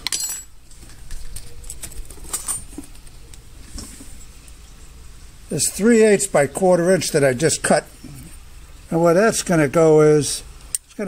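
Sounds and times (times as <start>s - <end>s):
aluminium pieces clinking: 0.0s - 3.0s.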